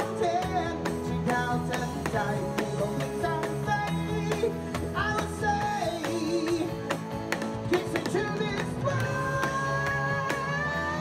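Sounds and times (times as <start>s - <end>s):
electronic drum kit beat: 0.0s - 11.0s
live rock band playing: 0.0s - 11.0s.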